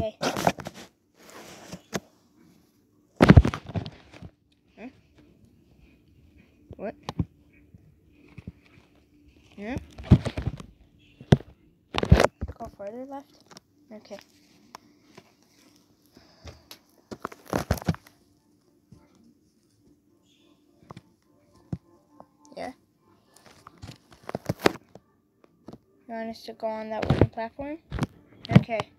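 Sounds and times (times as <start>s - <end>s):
plush toys thumping and rustling: 3.2s - 4.4s, 9.6s - 12.7s.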